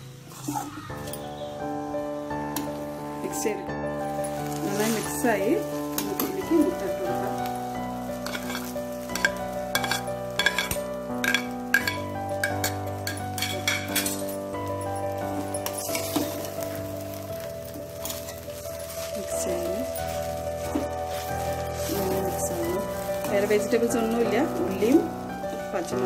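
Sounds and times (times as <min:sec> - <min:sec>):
background music with sustained chords: 0:00.0 - 0:26.0
frying sizzle: 0:00.0 - 0:26.0
metal spatula clinking and scraping: 0:04.2 - 0:26.0.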